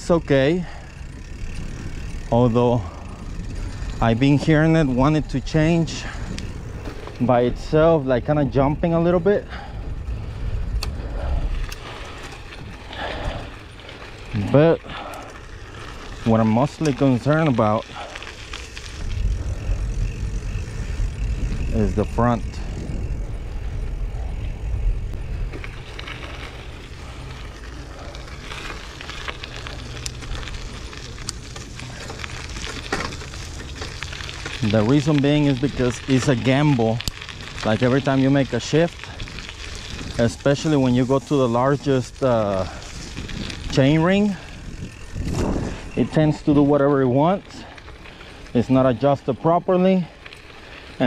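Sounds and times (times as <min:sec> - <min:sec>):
bicycle tyres rumbling: 0:00.0 - 0:51.0
bike tires on gravel: 0:00.0 - 0:51.0
sharp clicks: 0:10.7 - 0:11.0.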